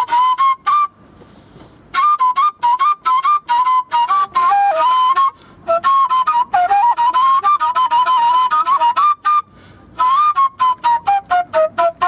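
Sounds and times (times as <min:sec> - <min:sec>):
whistle-flute high notes: 0:00.0 - 0:01.0.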